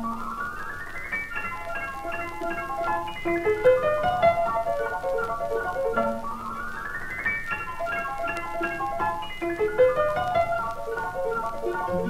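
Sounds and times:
piano playing rapid figures: 0.0 - 12.0
record surface noise: 0.0 - 12.0.

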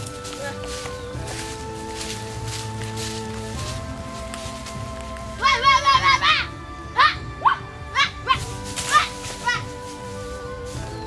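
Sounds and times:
background music with held notes: 0.0 - 11.0
child giving high calls: 5.4 - 9.7.

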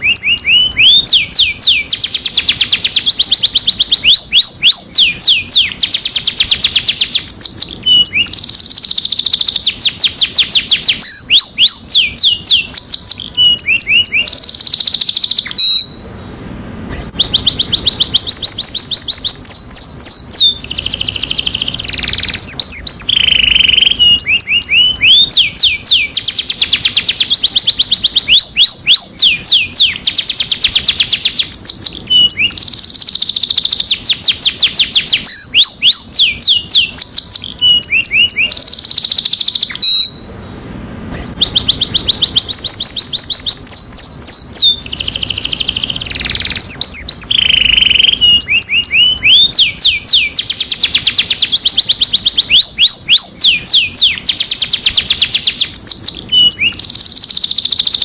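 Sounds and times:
canary singing trilled notes: 0.0 - 58.0.

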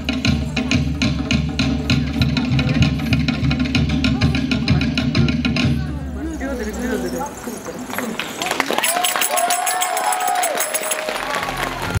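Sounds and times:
music: 0.0 - 7.1, 9.0 - 12.0
audience applause and cheering: 8.2 - 12.0.

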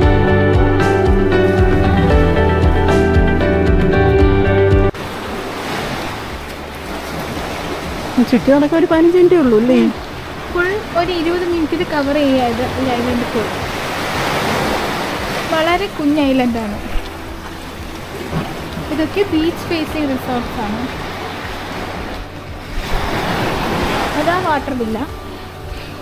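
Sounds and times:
sea waves: 0.0 - 26.0
wind: 4.9 - 26.0.

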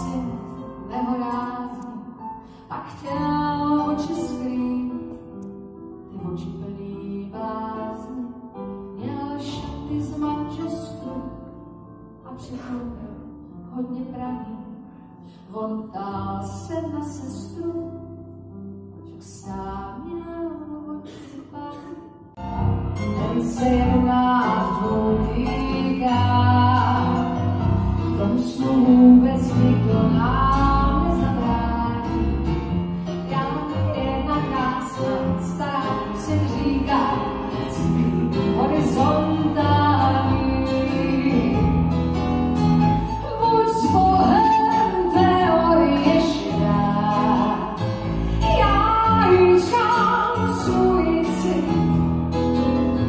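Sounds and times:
woman singing into microphone: 23.2 - 27.2, 28.0 - 32.3, 33.2 - 41.8, 43.2 - 52.0.

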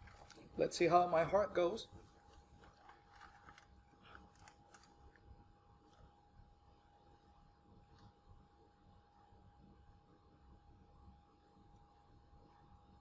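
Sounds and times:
thin steady hum: 0.0 - 13.0.

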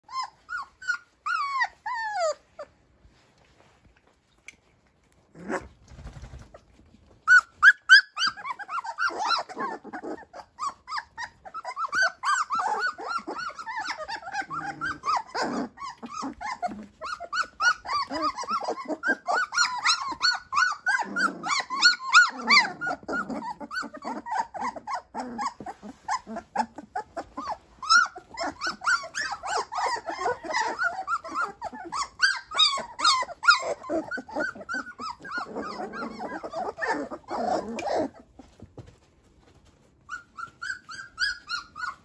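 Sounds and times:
puppies yipping and squeaking: 0.0 - 3.7, 5.3 - 42.0.

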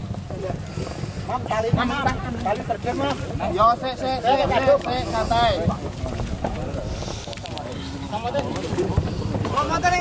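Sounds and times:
men talking and calling out: 0.0 - 10.0.

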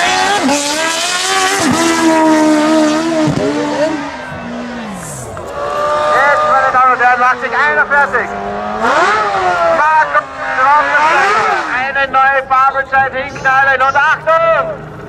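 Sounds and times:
motorcycle accelerating hard: 0.0 - 12.0
motorcycle revving in a burnout: 0.0 - 12.0.

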